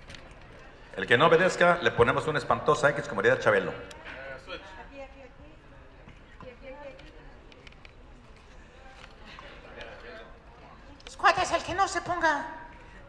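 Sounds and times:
faint background chatter: 0.0 - 13.0.

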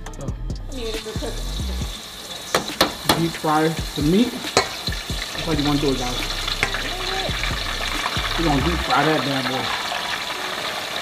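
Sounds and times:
meat deep frying in oil: 0.9 - 11.0.

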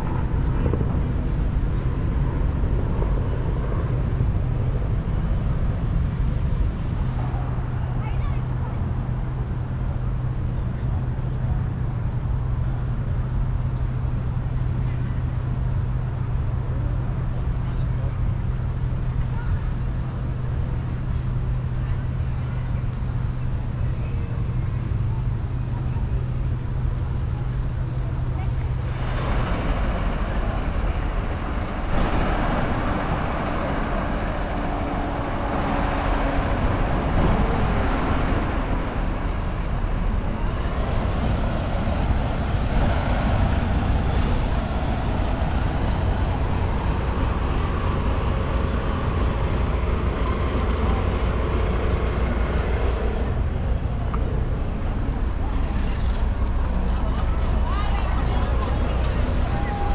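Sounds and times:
bus: 0.0 - 59.9
traffic rumbling past: 0.0 - 59.9
people talking: 7.8 - 9.0, 19.1 - 31.4, 55.0 - 59.9
air brakes hissing: 43.4 - 45.2.

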